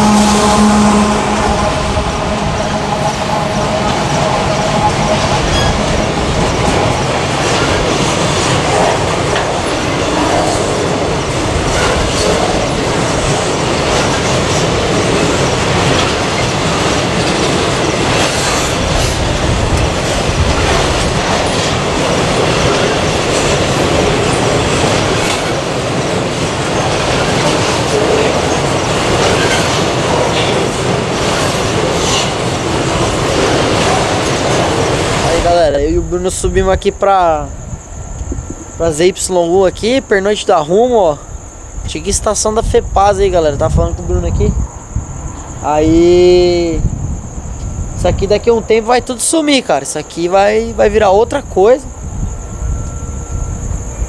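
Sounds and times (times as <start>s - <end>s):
train wheels rumbling on rails: 0.0s - 54.0s
wheels clicking over rail joints: 1.5s - 35.5s.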